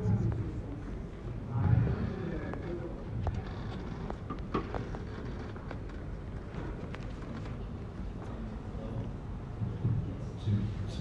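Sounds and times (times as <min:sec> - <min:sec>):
pa system room noise: 0:00.0 - 0:11.0.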